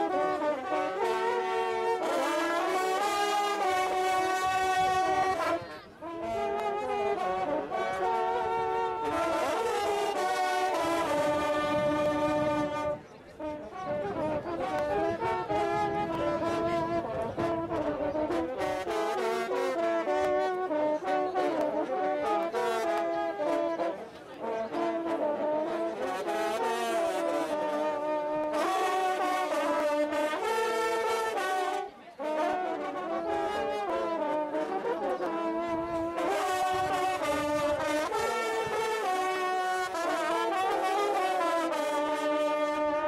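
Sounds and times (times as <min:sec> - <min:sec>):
hunting horns playing a fanfare: 0:00.0 - 0:43.0.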